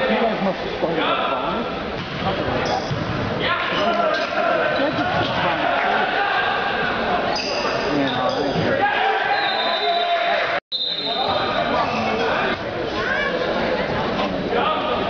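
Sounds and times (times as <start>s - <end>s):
players and spectators talking: 0.0s - 15.0s.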